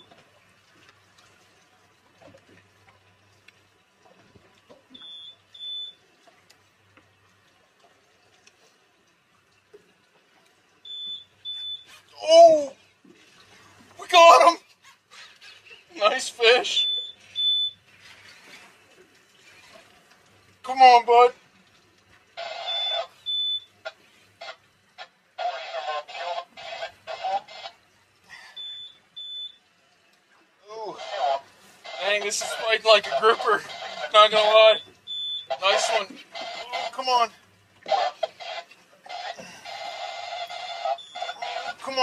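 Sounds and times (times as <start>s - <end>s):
man grunting and exclaiming: 12.2s - 12.8s, 14.0s - 14.6s
short high electronic beeps: 22.6s - 23.7s.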